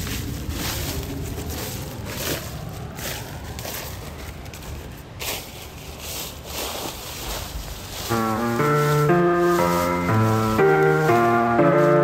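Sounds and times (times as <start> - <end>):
outdoor rustling: 0.0 - 12.0
lo-fi piano chords and melody: 7.8 - 12.0.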